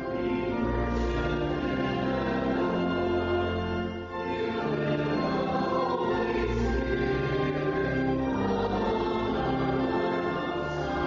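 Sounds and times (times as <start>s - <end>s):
instrumental accompaniment: 0.0s - 11.0s
voices singing a hymn: 0.0s - 11.0s.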